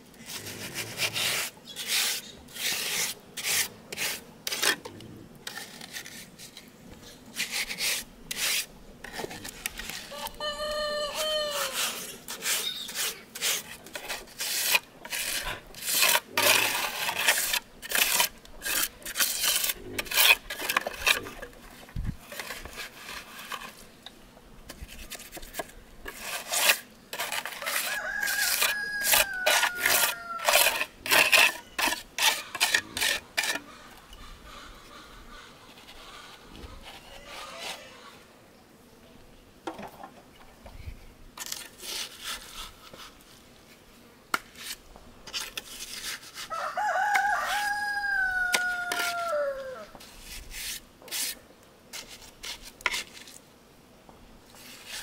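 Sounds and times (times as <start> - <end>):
trowel scraping wet mortar: 0.2 - 10.4, 11.4 - 23.9, 24.7 - 33.8, 35.7 - 38.0, 41.4 - 43.4, 44.4 - 47.8, 48.5 - 53.4, 54.5 - 55.0
rooster crowing: 10.1 - 11.9, 27.6 - 30.8, 37.0 - 38.2, 46.5 - 50.0.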